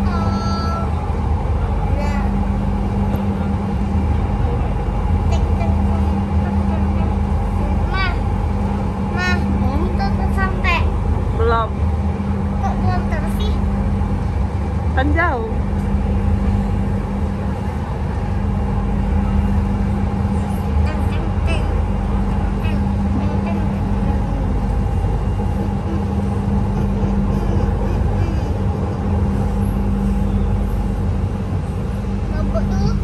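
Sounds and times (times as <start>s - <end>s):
constant train hum: 0.0s - 33.0s
train running rumble: 0.0s - 33.0s.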